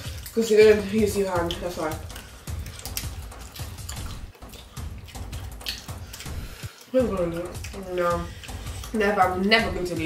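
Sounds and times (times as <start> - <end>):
chewing and mouth sounds: 0.0 - 10.0.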